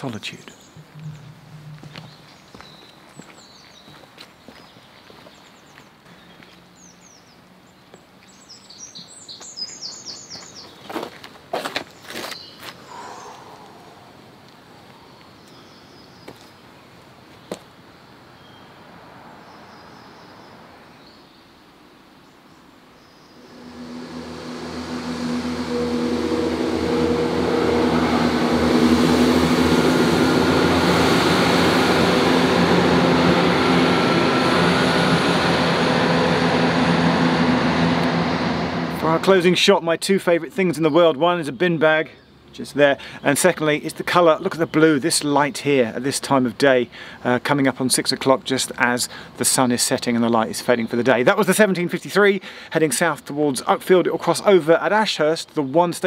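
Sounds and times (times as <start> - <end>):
bird chirps: 0.4 - 10.9, 18.3 - 18.8
diesel train passing: 0.7 - 3.0, 12.9 - 15.4, 23.3 - 39.7.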